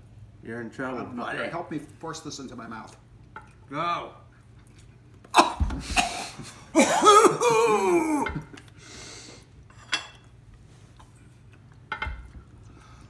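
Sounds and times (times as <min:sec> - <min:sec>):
man crying out: 0:05.3 - 0:05.8, 0:06.7 - 0:08.6.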